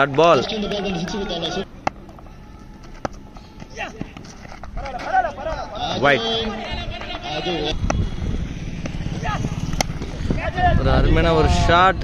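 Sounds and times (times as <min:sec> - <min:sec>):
men calling: 0:00.0 - 0:12.0.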